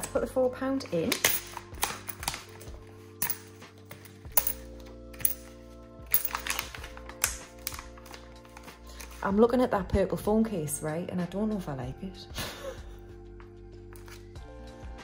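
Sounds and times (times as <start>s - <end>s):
soft background music: 0.0s - 15.0s
coins clicking and tapping: 1.0s - 9.2s.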